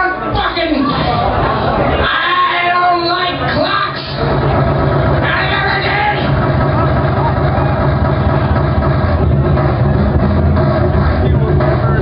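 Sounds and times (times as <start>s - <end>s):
electronic band through pa: 0.0s - 12.0s
deep bass: 3.3s - 12.0s.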